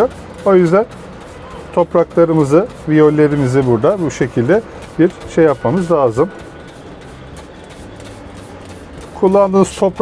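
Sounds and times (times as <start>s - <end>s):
spray bottle misting: 0.0s - 10.0s
steady background noise: 0.0s - 10.0s.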